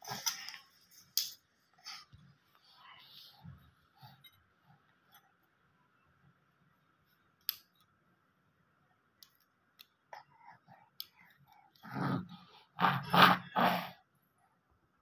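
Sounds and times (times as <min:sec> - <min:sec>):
baby grunting: 0:11.9 - 0:14.0.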